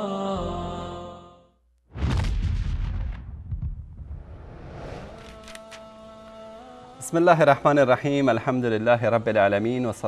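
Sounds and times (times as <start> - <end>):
deep impact sound effect: 1.9 - 5.2.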